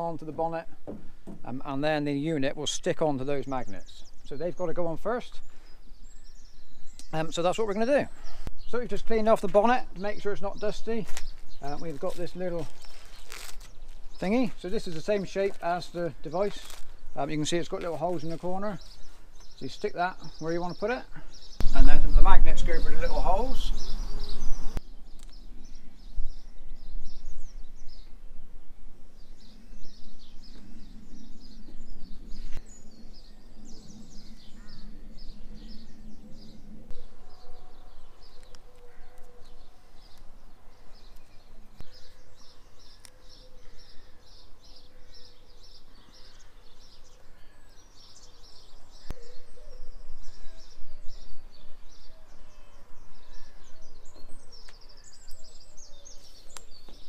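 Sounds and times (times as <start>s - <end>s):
small birds chirping: 0.0s - 57.0s
low rumble: 28.4s - 37.2s.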